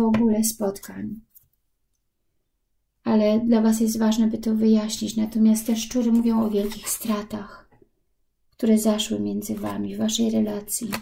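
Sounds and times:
woman speaking: 0.0 - 1.2, 3.0 - 7.7, 8.6 - 11.0.

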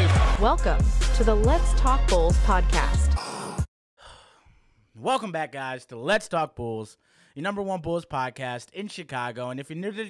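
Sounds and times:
faint breath in: 3.2 - 4.8, 7.0 - 7.4.

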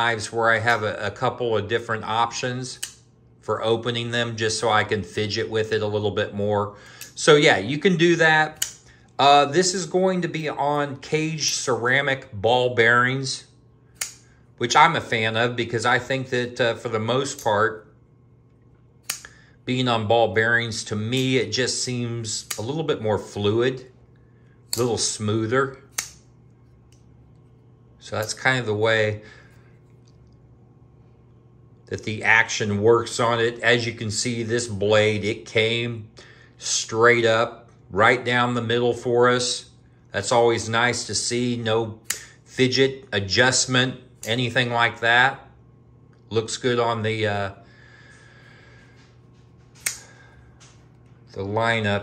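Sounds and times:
folding knife blade snapping open: 25.9 - 26.2, 49.8 - 50.0.

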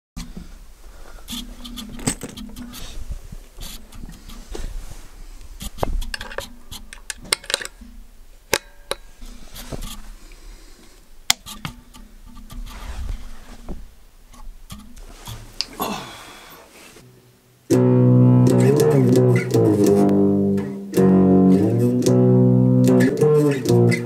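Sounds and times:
low electrical hum: 0.2 - 23.0
electric guitar handling noise: 17.7 - 24.0.

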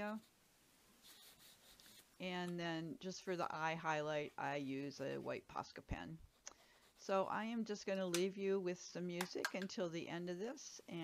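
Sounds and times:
paintbrush rubbing on paper: 1.0 - 2.2, 6.2 - 7.4.

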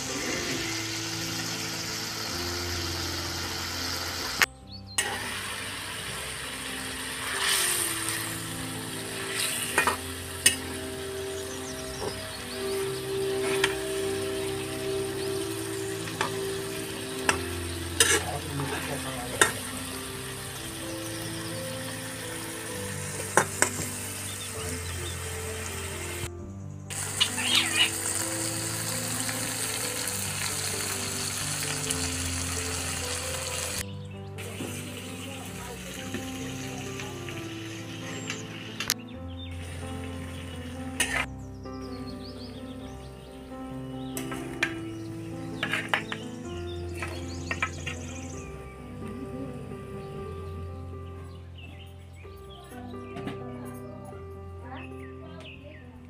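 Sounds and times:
gravy sizzling in a pan: 0.0 - 26.3, 26.9 - 33.8, 34.4 - 38.9, 39.6 - 41.3
background music: 0.0 - 56.0
metal spatula scraping a pan: 18.0 - 19.6, 41.0 - 41.3, 45.6 - 46.2.

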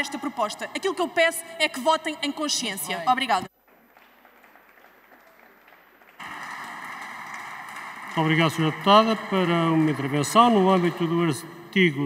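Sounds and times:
applause: 3.5 - 11.5.

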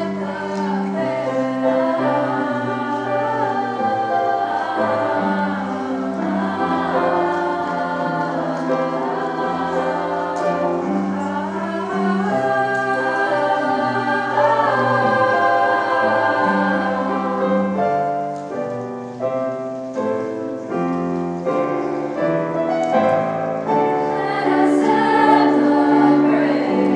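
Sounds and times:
women's choir singing: 0.0 - 26.9.

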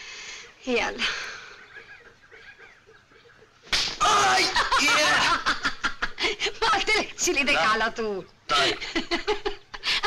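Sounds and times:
sharp hand slap: 3.7 - 4.0.

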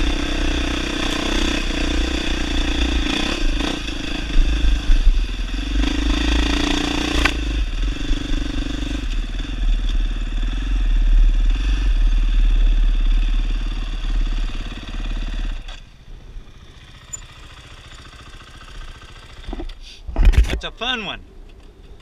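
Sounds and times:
dirt bike engine under throttle: 0.0 - 19.8.

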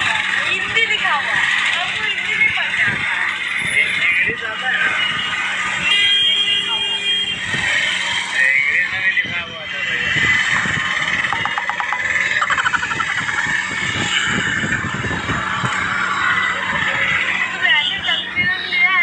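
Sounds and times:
street traffic: 0.0 - 19.0
voices: 0.0 - 19.0
vehicle horn: 5.8 - 7.6.

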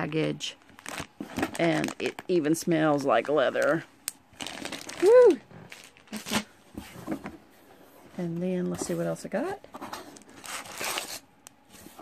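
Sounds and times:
plastic pack rustling and scraping: 0.1 - 12.0.

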